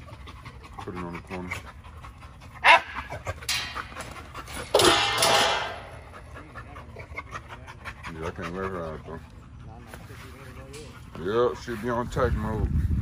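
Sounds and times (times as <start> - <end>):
dogs panting: 0.0 - 12.2.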